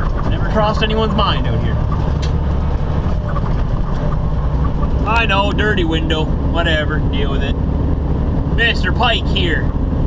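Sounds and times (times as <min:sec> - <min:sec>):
diesel truck engine drone: 0:00.0 - 0:10.0
road noise: 0:00.0 - 0:10.0.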